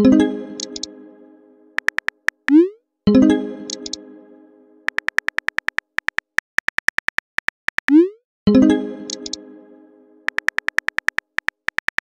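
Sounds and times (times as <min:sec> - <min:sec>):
keyboard typing clicks: 0:00.6 - 0:00.9, 0:01.8 - 0:02.6, 0:03.7 - 0:04.0, 0:04.9 - 0:08.1, 0:09.1 - 0:09.4, 0:10.3 - 0:12.0.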